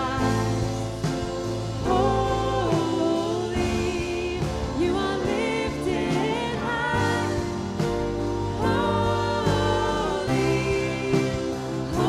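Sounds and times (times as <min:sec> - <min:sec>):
drums: 0:00.0 - 0:12.0
guitar: 0:00.0 - 0:12.0
man and woman singing: 0:00.0 - 0:12.0.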